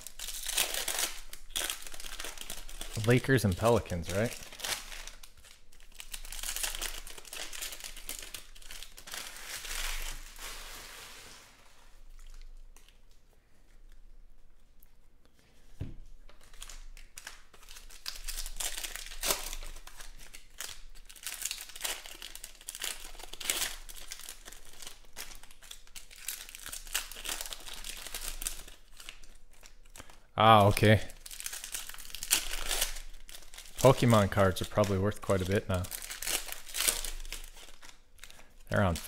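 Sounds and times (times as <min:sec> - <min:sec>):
foil wrappers crinkling and tearing: 0:00.0 - 0:13.2, 0:16.3 - 0:39.0.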